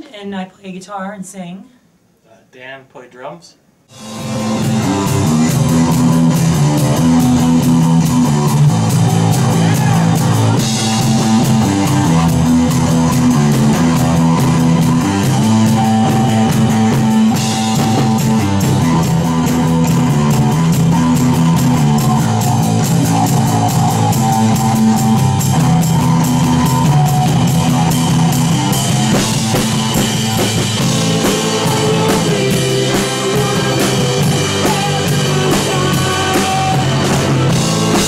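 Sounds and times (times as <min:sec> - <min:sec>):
bass guitar: 0:03.9 - 0:38.0
drum kit steady beat: 0:03.9 - 0:38.0
electric guitar: 0:03.9 - 0:38.0.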